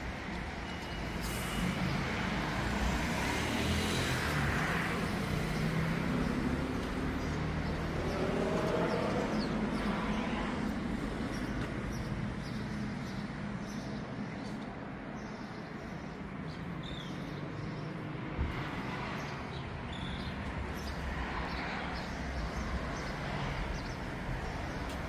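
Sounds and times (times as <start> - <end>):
road traffic noise: 0.0 - 25.0.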